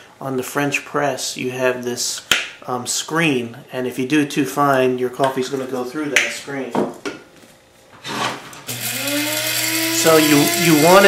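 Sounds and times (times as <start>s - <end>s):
coffee grinder whirring: 8.6s - 11.0s.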